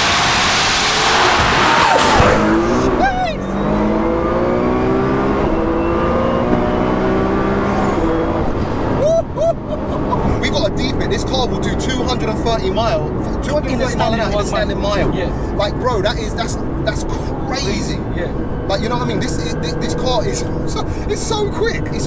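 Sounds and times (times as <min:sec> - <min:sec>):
car engine accelerating hard: 0:00.0 - 0:22.0
wind and road noise: 0:00.0 - 0:22.0.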